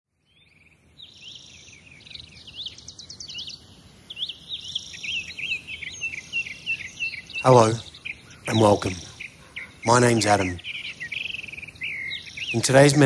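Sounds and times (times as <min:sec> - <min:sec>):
birds chirping: 0:00.1 - 0:13.0
high steady bird trill: 0:00.1 - 0:13.0.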